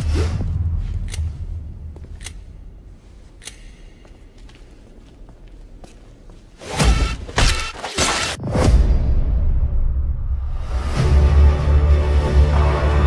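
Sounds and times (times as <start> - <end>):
sharp clicks: 3.4 - 4.0.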